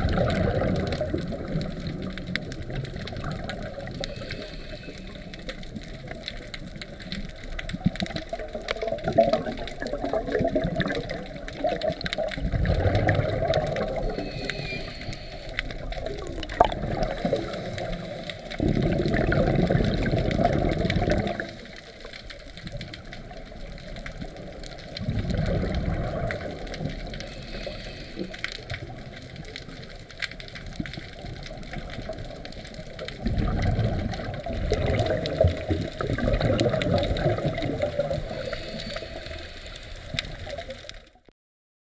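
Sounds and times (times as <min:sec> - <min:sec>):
underwater exhaled bubbles: 0:00.0 - 0:41.3
underwater water hiss: 0:03.0 - 0:06.2, 0:12.6 - 0:22.3, 0:24.4 - 0:29.9, 0:33.4 - 0:40.6.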